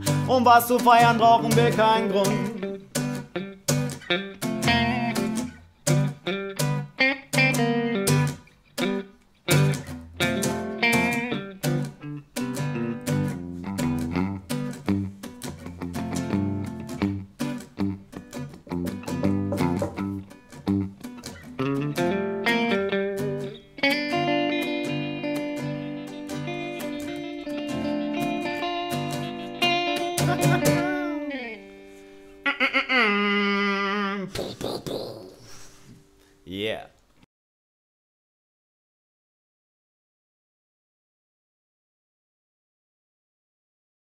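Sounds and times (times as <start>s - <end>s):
acoustic guitar strummed chords: 0.0s - 32.4s.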